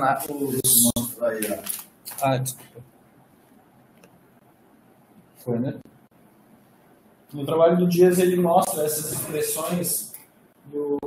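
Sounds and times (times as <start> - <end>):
man speaking: 0.0 - 2.8, 7.3 - 11.0.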